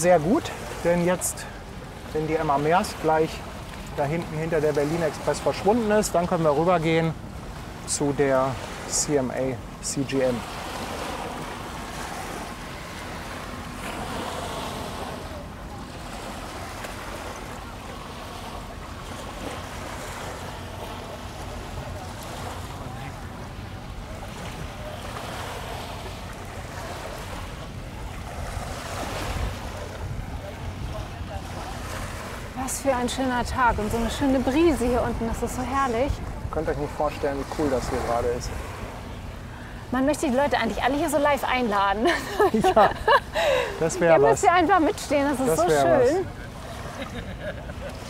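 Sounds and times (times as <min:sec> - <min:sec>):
waves washing onto sand: 0:00.0 - 0:48.0
wind buffeting microphone: 0:27.5 - 0:39.2.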